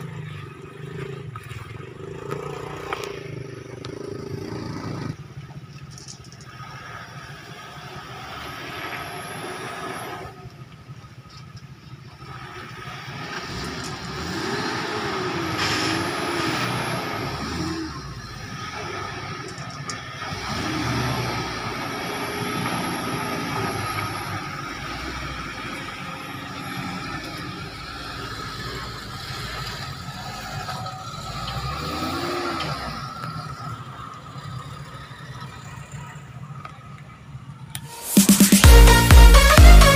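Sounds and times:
truck engine revving under load: 6.4 - 10.8, 12.2 - 37.0.

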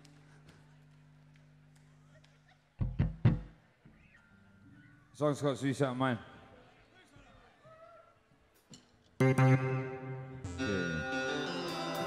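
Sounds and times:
plucked bass guitar notes: 9.2 - 12.0.

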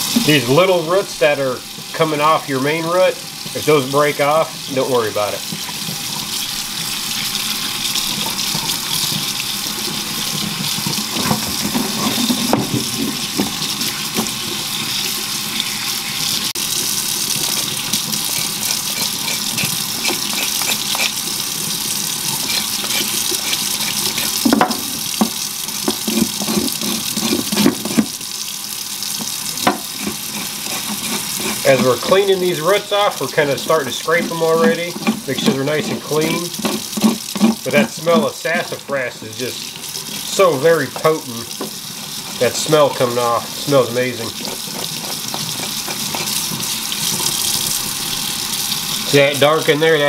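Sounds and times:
faucet running into steel sink: 0.0 - 50.0
knife scraping roots on board: 18.3 - 21.2, 22.4 - 24.5, 29.8 - 32.4.

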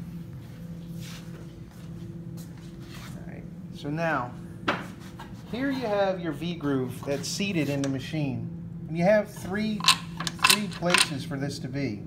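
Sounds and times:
machine low hum: 0.0 - 12.0
metal coil handling noises: 9.3 - 11.3.

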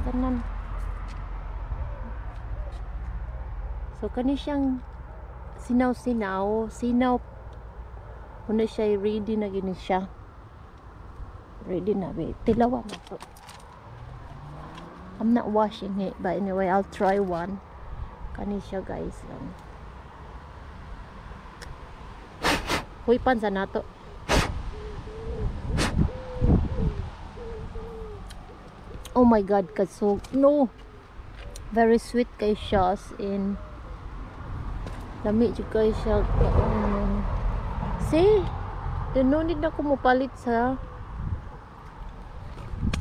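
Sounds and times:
puffs of breath: 22.4 - 22.9, 24.2 - 24.6, 25.7 - 26.1
wind buffeting microphone: 24.4 - 30.6, 31.6 - 43.0.

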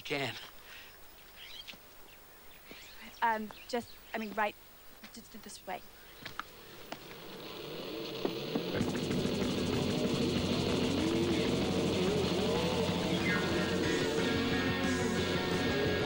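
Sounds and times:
rock band playing: 8.8 - 16.0.

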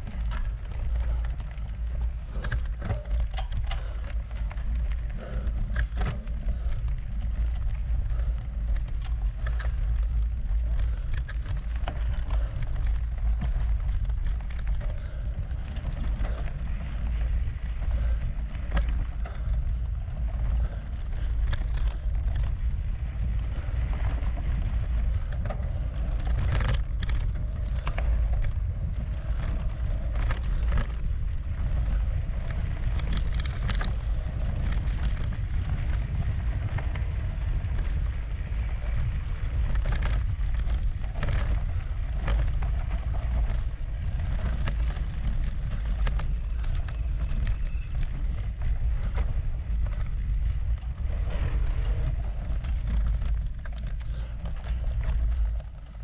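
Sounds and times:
bike clicks and rattles: 0.0 - 56.0
bike tyres rolling on dirt: 0.0 - 56.0
wind buffeting microphone: 0.0 - 56.0.

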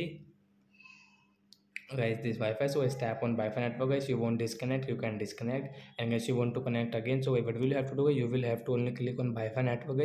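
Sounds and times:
man speaking: 0.0 - 0.2, 1.8 - 10.0.

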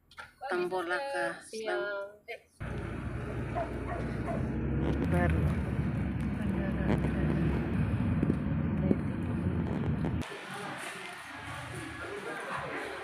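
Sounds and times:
car cabin engine and tyre rumble: 2.6 - 10.2.

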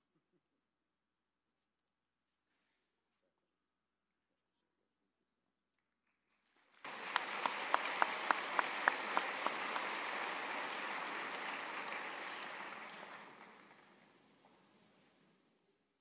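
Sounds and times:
audience applause: 6.7 - 14.2
sharp close claps: 6.8 - 14.1.

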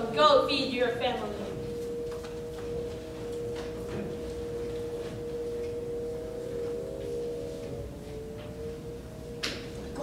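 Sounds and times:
electronic two-pitch tone: 1.4 - 10.0.

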